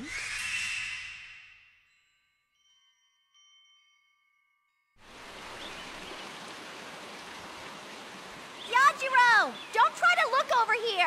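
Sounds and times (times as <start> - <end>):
soft chiming music: 0.1 - 5.0
waterfall rushing water: 5.0 - 11.0.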